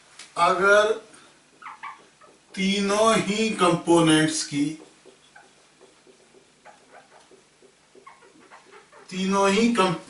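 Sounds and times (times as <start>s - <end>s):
marker squeaking on whiteboard: 1.5s - 3.0s, 4.3s - 9.3s.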